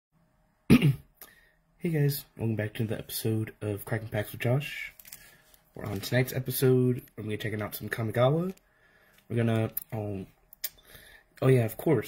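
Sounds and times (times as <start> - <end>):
person coughing: 0.7 - 1.2.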